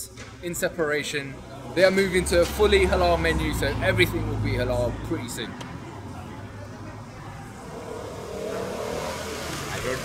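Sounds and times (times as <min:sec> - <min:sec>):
car engine passing: 0:01.3 - 0:10.0.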